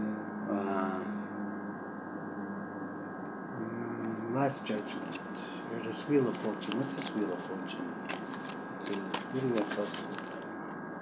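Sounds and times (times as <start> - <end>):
man humming: 0.0 - 7.9
low electrical hum: 0.0 - 11.0.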